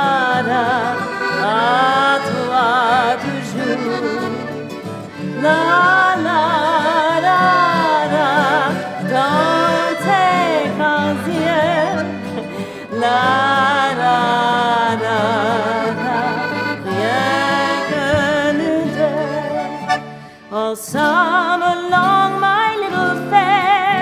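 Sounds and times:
accordion playing chords: 0.0 - 20.7
woman singing with vibrato: 0.0 - 24.0.

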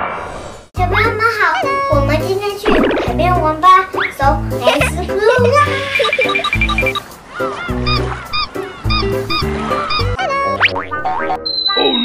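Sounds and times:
chirping notes: 1.4 - 12.0.

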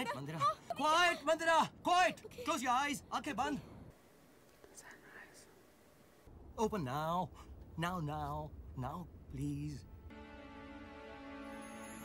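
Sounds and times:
faint whispered word: 4.6 - 5.6.

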